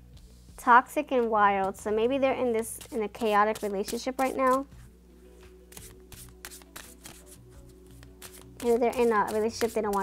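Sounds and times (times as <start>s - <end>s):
cards shuffled by hand: 2.6s - 10.0s.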